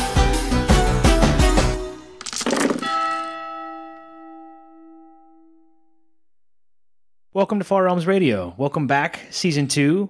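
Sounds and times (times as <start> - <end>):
bell-like note ringing: 2.8 - 6.2.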